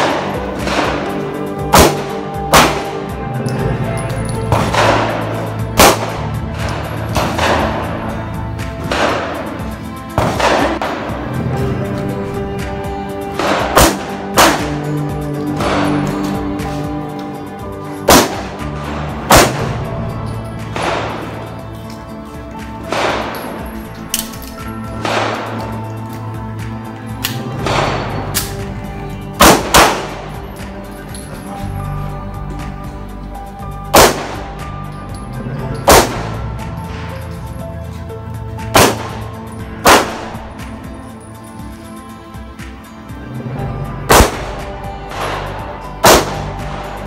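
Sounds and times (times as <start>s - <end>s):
pistol shots: 0.0s - 3.1s, 4.5s - 8.1s, 8.8s - 9.6s, 10.2s - 11.2s, 13.3s - 16.4s, 18.0s - 20.0s, 20.7s - 21.5s, 22.8s - 24.4s, 25.0s - 25.9s, 27.2s - 28.7s, 29.4s - 30.3s, 33.9s - 34.5s, 35.8s - 36.4s, 38.7s - 40.4s, 44.1s - 47.0s
background music: 0.0s - 47.0s.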